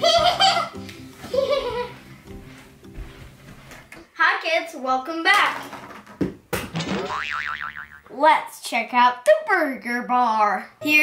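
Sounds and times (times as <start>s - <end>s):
cartoon boing sound effect: 6.8s - 8.1s.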